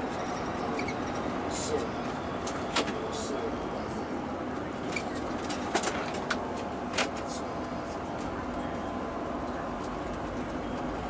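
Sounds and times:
bus road and engine noise: 0.0 - 11.0.

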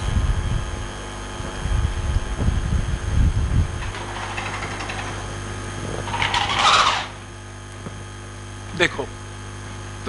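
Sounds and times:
mains hum: 0.0 - 10.0.

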